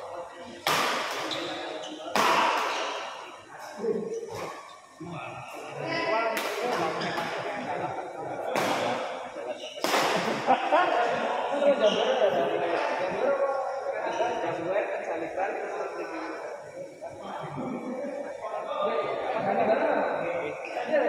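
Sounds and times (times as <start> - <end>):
voices: 0.0 - 21.0
racket hitting shuttlecock: 0.6 - 1.5, 2.1 - 3.1.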